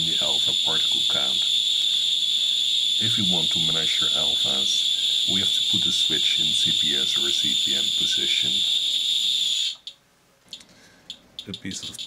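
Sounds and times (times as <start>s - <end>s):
geiger counter buzzing: 0.0s - 12.0s
scattered geiger counter clicks: 9.7s - 12.0s.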